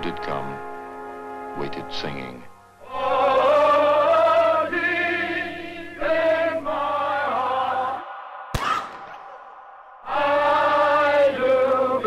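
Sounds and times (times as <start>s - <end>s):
group of voices singing: 2.8s - 8.6s, 10.0s - 12.0s.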